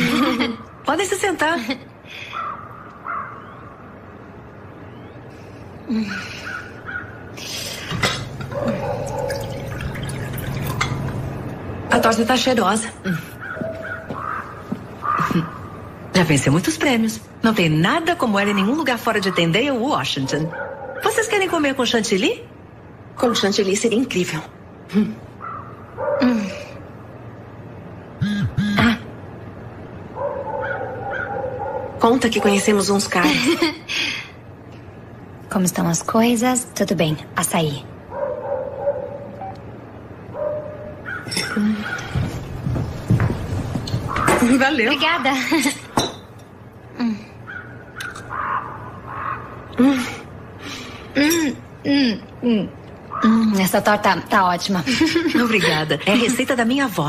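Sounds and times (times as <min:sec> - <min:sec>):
bird calling: 0:13.4 - 0:15.8, 0:47.5 - 0:49.7.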